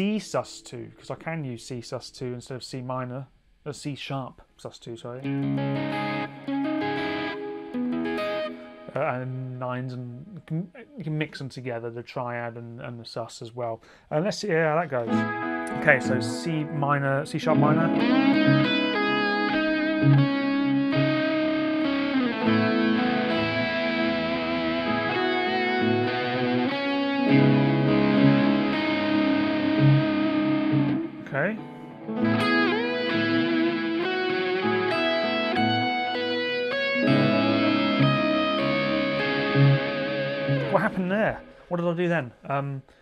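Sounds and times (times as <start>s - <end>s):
electric guitar playing lead: 5.2s - 9.5s, 15.0s - 41.7s.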